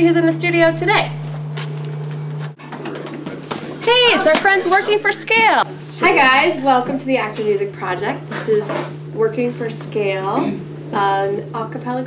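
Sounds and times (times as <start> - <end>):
woman speaking: 0.0 - 1.2, 3.8 - 12.0
steady low hum: 0.0 - 12.0.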